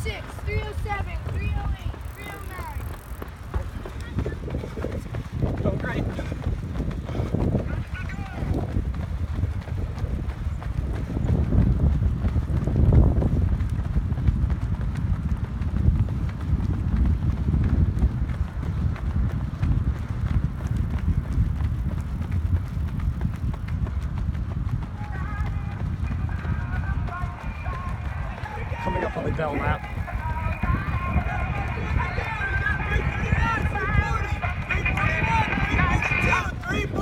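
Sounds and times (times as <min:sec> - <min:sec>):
runners footfalls on track: 0:00.0 - 0:37.0.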